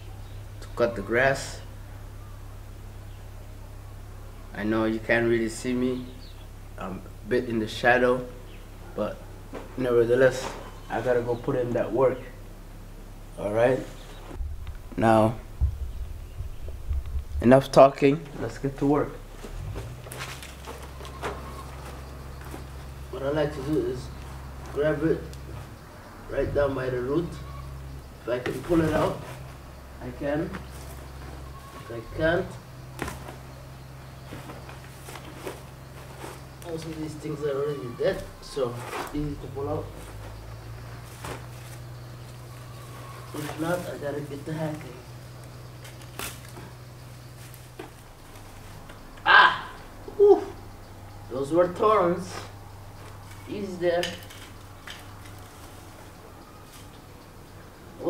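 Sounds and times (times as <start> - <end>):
low hum: 0.0 - 58.0
dry weeds crackling and rustling: 18.3 - 25.9, 27.4 - 32.0, 32.8 - 37.3, 40.0 - 49.2, 52.9 - 57.8.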